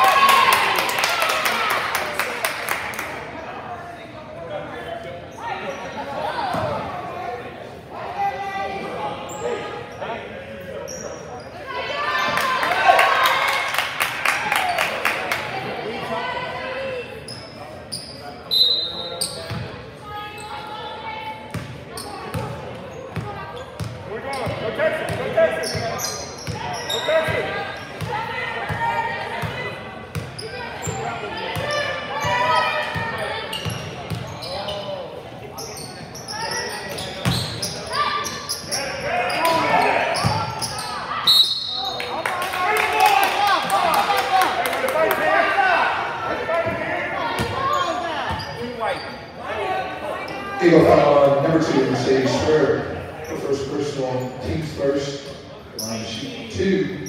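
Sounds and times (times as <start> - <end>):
echoing voices in hall: 0.0 - 57.0.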